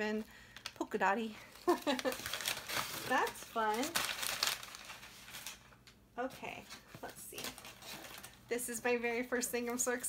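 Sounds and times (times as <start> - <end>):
packing paper crinkling: 1.4 - 6.0, 6.6 - 8.4.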